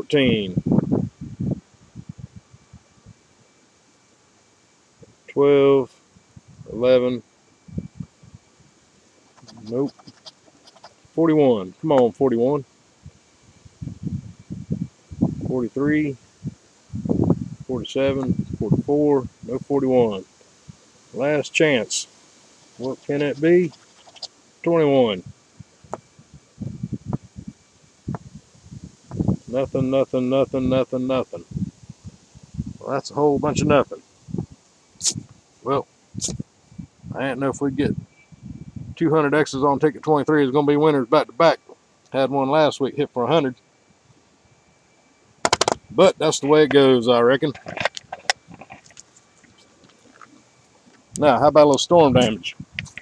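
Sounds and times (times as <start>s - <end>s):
coin scraping scratch-off ticket: 9.3s - 11.0s, 22.8s - 24.3s
paper rustle: 9.4s - 11.0s, 22.8s - 24.3s
sharp clicks: 45.4s - 45.9s.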